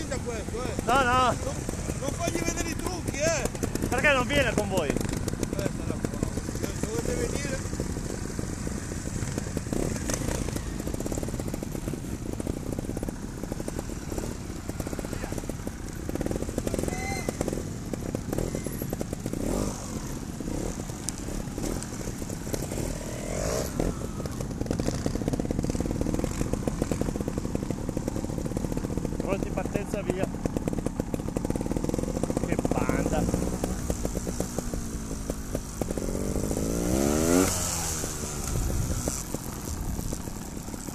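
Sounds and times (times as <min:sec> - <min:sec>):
motorcycle engines blipping: 0:00.0 - 0:40.9.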